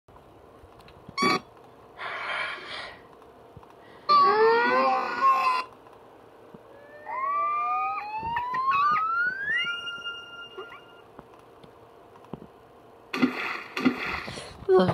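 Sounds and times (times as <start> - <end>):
loud warbling pitched sound: 6.8 - 11.0
rising whistle-like glide: 6.8 - 11.0
noisy pitched burst: 13.1 - 14.5.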